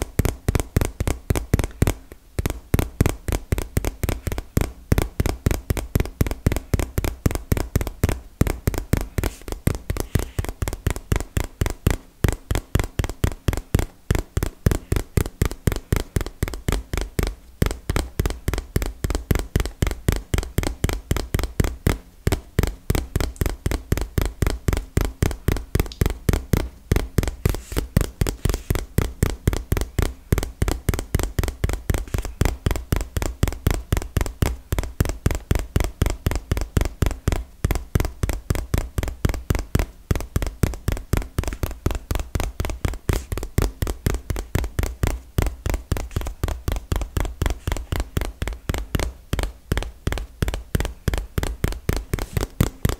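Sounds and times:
fingertips tapping cardboard box: 0.0s - 52.9s.

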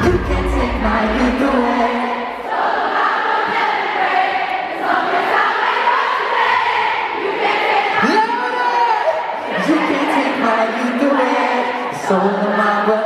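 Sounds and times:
band bass: 0.0s - 2.1s
crowd singing together: 0.0s - 13.0s.

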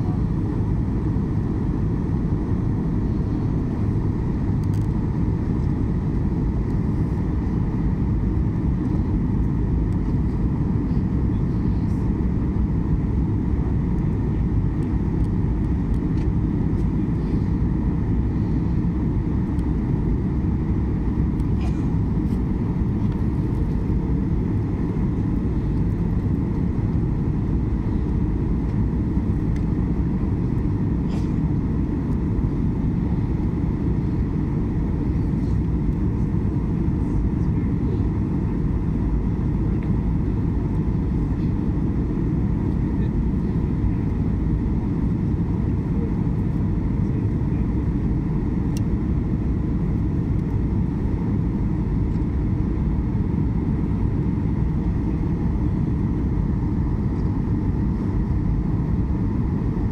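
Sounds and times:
airliner engines roaring: 0.0s - 59.9s.

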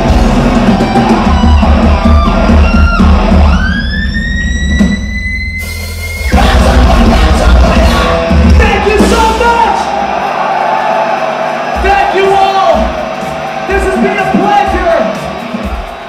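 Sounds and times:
thrash metal band playing live: 0.0s - 10.2s.

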